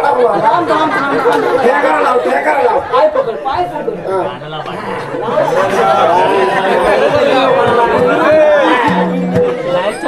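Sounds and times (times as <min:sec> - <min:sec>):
loud overlapping chatter: 0:00.0 - 0:10.0.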